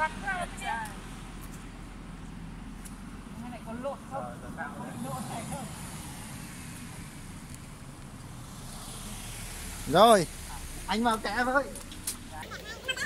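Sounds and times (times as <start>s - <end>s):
low outdoor rumble: 0.0s - 8.7s
people talking indistinctly: 3.4s - 6.1s.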